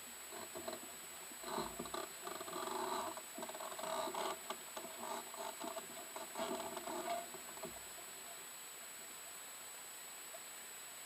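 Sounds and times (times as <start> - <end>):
waves lapping against a hull: 0.3 - 8.4.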